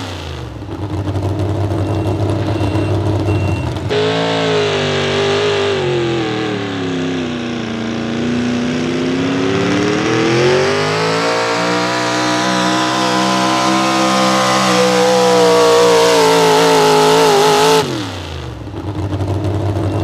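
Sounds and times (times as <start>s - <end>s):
truck engine at full throttle: 0.0s - 20.0s.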